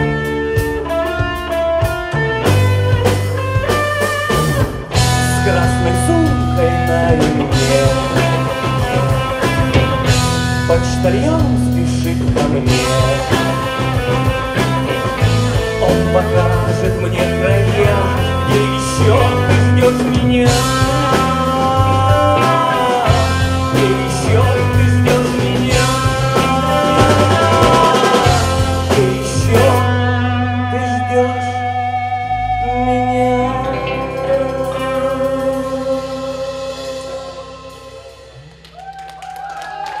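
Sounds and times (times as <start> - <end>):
electric bass: 0.0 - 39.5
live band playing: 0.0 - 39.9
drums: 0.0 - 40.0
electric guitar: 0.0 - 40.0
man singing long notes: 4.9 - 38.6.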